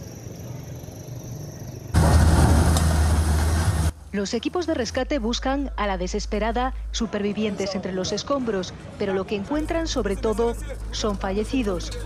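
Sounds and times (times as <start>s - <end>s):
faint street background: 0.0s - 2.0s, 3.9s - 12.0s.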